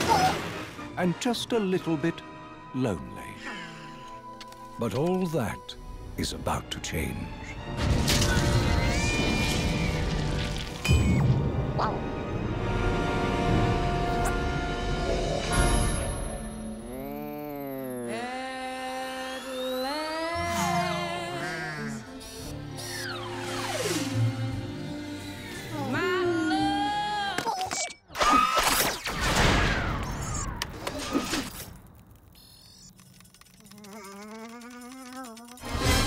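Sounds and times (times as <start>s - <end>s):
faint clicks: 32.7s - 35.6s.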